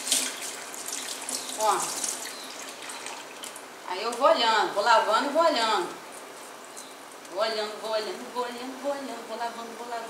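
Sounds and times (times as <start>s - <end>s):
tap water splashing on herbs: 0.0s - 4.2s.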